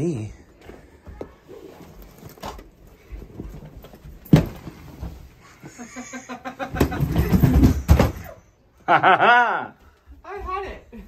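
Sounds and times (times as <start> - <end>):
suitcase thumping down stairs: 3.5 - 5.2, 6.7 - 8.4.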